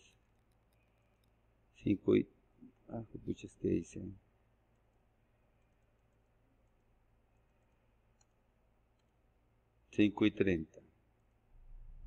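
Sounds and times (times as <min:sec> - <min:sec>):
computer mouse clicks: 0:00.0 - 0:01.4, 0:04.7 - 0:09.2.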